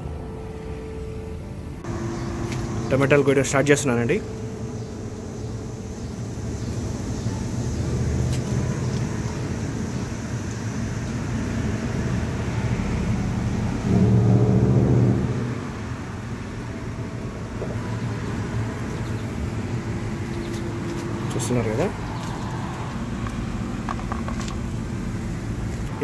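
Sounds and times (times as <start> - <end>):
road traffic hum: 0.0 - 26.0
passing vehicle engine: 1.8 - 26.0.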